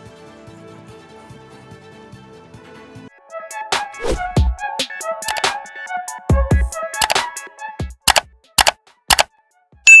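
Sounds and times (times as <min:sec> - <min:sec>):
sharp double clicks: 0:05.3 - 0:05.5, 0:07.0 - 0:07.2, 0:08.1 - 0:09.3.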